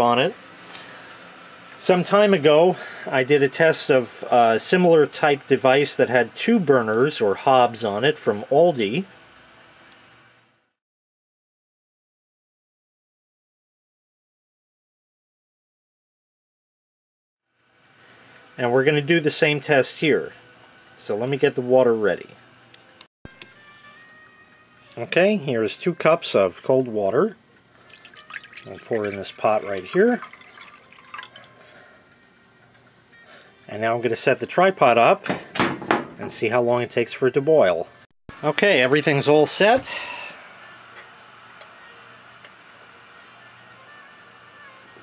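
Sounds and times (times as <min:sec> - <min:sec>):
water dripping: 0:27.8 - 0:31.6
water pouring into saucepan: 0:27.8 - 0:31.7.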